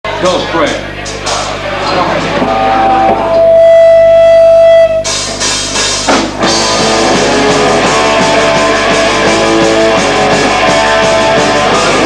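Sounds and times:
rock band playing live: 1.0 - 12.0.

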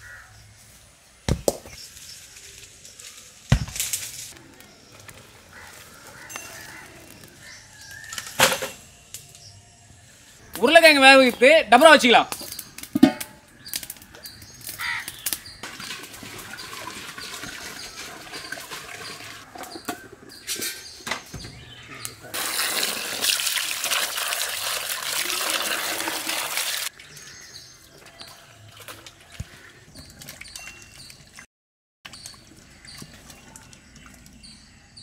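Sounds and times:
potatoes knocking against metal pot: 12.3 - 13.4
water pouring into pot: 15.6 - 19.5, 22.3 - 27.2
water splashing: 15.6 - 19.5, 22.3 - 27.2.

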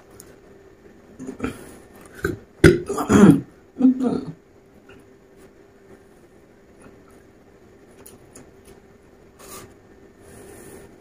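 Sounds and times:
man burping: 1.2 - 4.4.

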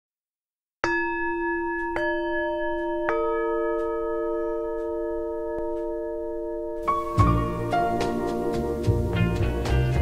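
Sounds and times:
bell-like chime notes: 0.8 - 7.8.

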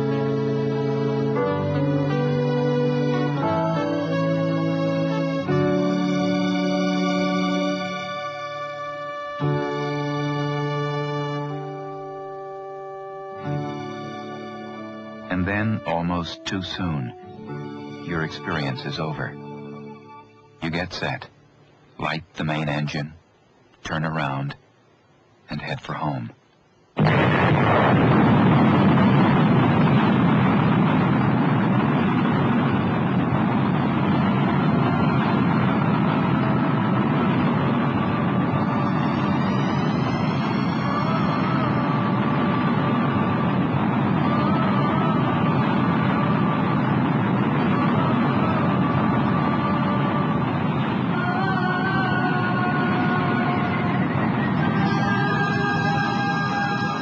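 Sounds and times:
rocket engine roar: 27.0 - 57.0.

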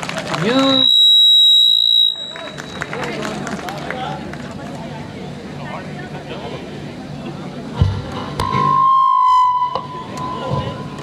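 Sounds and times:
microphone feedback howl: 0.6 - 2.9, 8.4 - 11.0.

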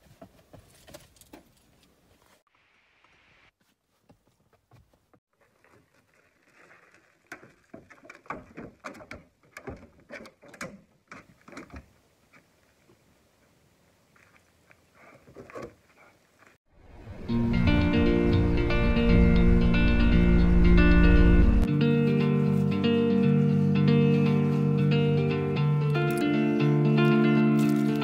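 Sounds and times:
loud guitar music: 16.9 - 28.0.

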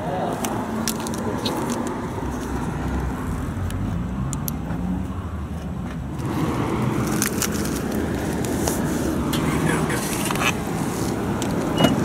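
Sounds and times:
car engine rumbling: 0.0 - 12.0.

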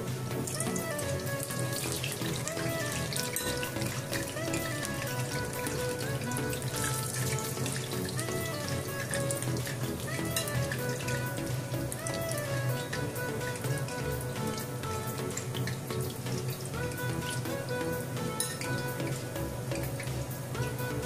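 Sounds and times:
background music: 0.0 - 21.0
oil bubbling and sizzling: 0.0 - 21.0.

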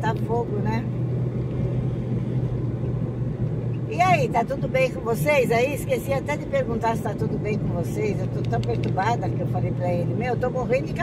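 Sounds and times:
car engine and tyres hum: 0.0 - 11.0.

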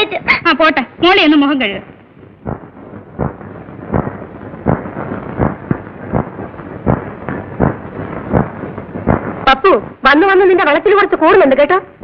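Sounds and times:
dull thumps: 2.2 - 9.9.

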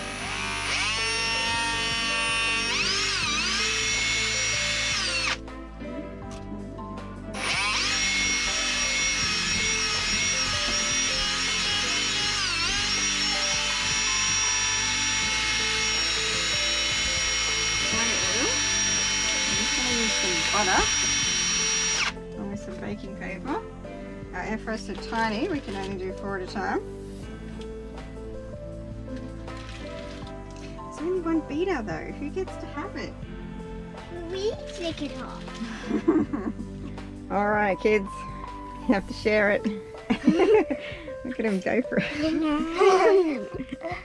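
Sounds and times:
drill whirring mixing batter: 0.0 - 5.4, 7.4 - 22.2.

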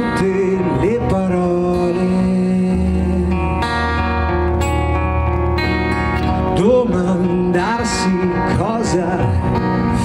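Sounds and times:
acoustic guitar sustained notes: 0.0 - 10.0.

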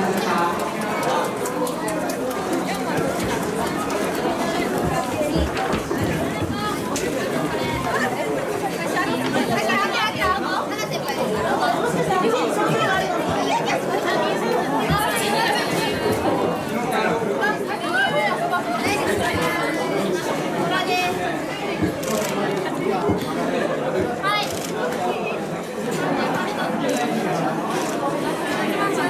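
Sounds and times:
girls chattering: 0.0 - 29.0.

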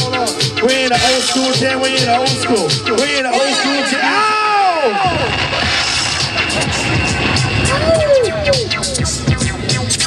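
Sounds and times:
hip-hop beat: 0.0 - 10.0
record scratching: 5.0 - 10.0.

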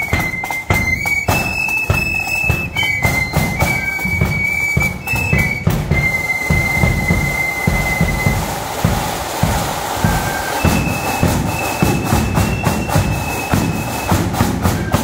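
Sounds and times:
drums march beat: 0.0 - 15.0
flutes holding high notes: 0.0 - 15.0.

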